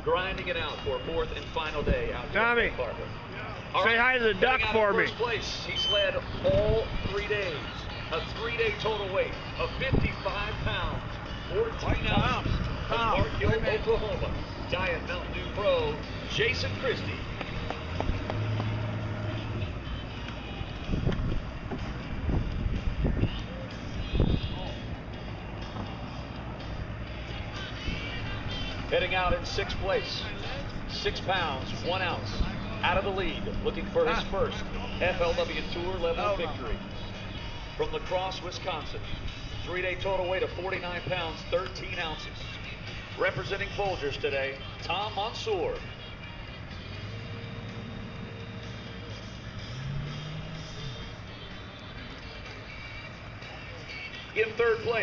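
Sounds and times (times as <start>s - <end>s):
higher engine tone: 0.0s - 55.0s
low steady rumble: 1.5s - 45.1s
wind buffeting microphone: 9.7s - 15.5s, 20.5s - 25.0s.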